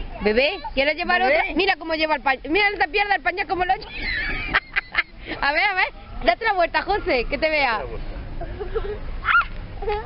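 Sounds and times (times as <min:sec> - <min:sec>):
high-pitched yelp: 0:09.2 - 0:10.0.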